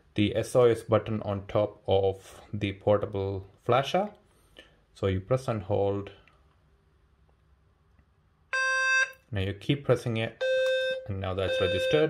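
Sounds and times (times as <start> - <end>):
loud electronic beep: 8.6 - 9.1, 10.4 - 12.0.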